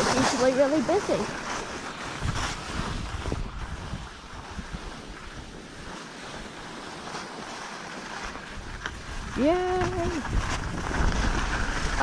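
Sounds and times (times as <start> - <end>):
skis scraping over snow: 0.0 - 12.0
wind rumbling on microphone: 0.0 - 12.0.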